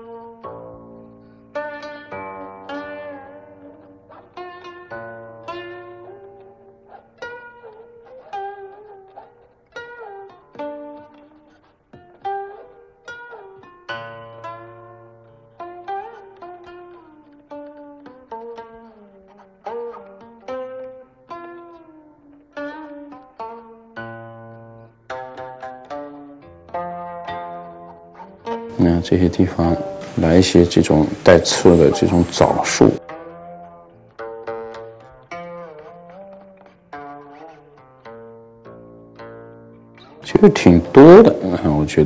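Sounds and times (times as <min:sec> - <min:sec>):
plucked zither-like string music: 0:00.0 - 0:42.0.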